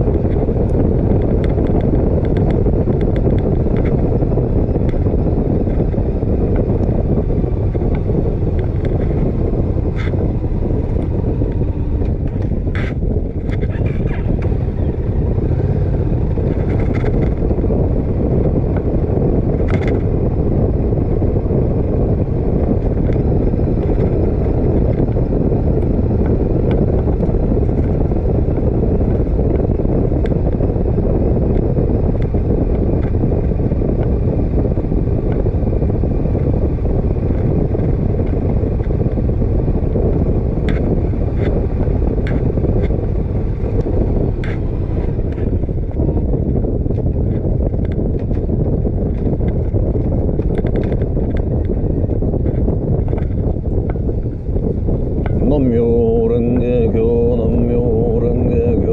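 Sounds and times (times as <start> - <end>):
motorcycle engine running: 0.0 - 58.9
wind noise on microphone: 0.0 - 58.9.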